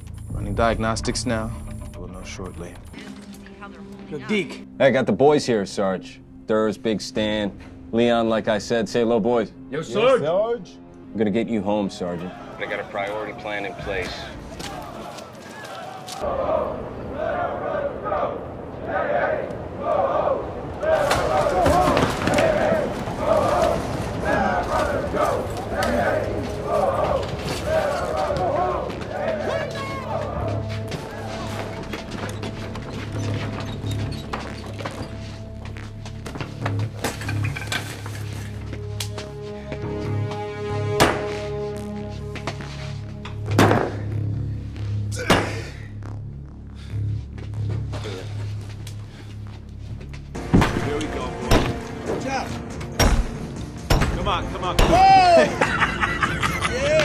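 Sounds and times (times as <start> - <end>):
tense music score: 0.0 - 57.0
indistinct raised voices: 12.1 - 32.4.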